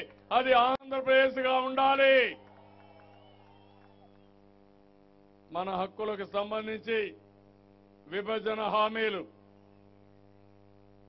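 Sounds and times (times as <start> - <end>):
man's amplified voice: 0.0 - 2.4, 5.5 - 7.3, 8.0 - 9.4
electrical mains hum: 0.0 - 11.0.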